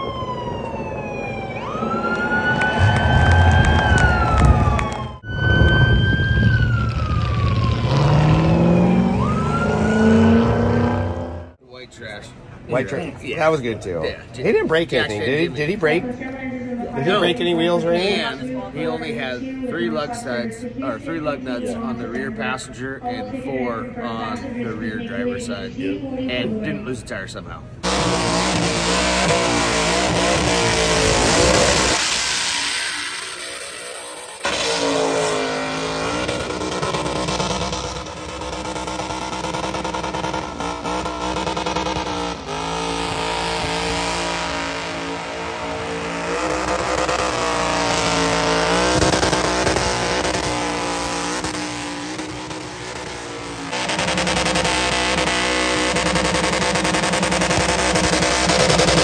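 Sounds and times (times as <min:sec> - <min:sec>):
truck engine revving hard: 0:01.7 - 0:11.6, 0:27.8 - 0:59.0.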